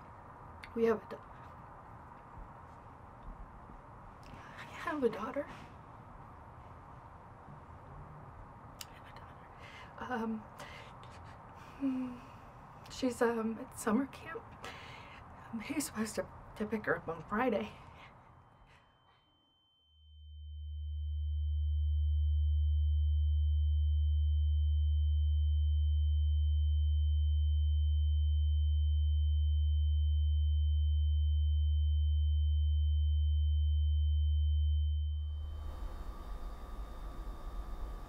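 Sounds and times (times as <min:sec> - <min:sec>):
high ringing tone: 0:18.7 - 0:38.0
deep synthesized drone: 0:20.3 - 0:38.0.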